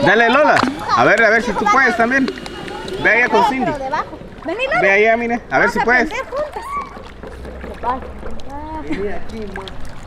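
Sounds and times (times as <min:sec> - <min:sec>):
voices calling: 0:00.0 - 0:09.4
pool water sloshing: 0:00.0 - 0:10.0.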